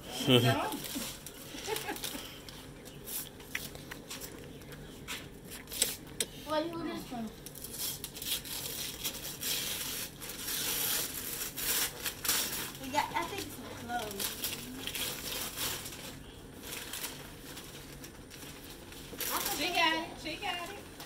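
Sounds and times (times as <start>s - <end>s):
wrapping paper tearing and rustling: 0.4s - 4.4s, 7.4s - 21.0s.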